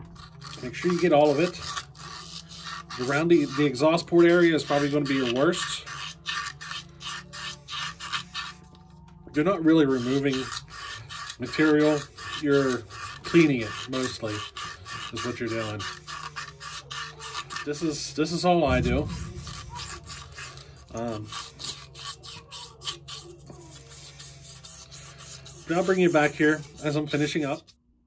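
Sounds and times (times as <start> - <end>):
sandpaper rasping on metal: 0.0 - 8.7, 9.4 - 27.7.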